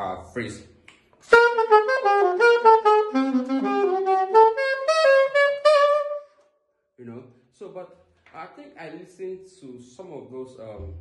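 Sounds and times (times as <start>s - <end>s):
alto saxophone jazz line: 1.2s - 6.4s.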